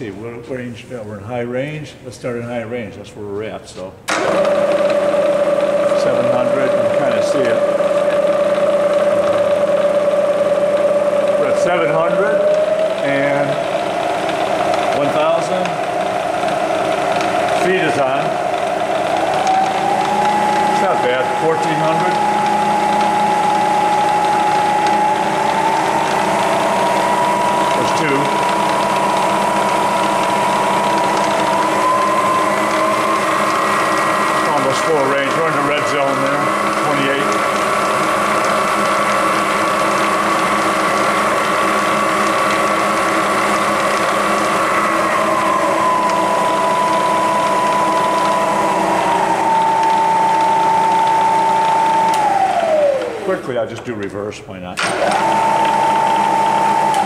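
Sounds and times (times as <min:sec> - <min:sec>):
milling machine whining: 0:03.9 - 0:54.1, 0:54.8 - 0:57.0
mechanical rattling: 0:12.5 - 0:53.4.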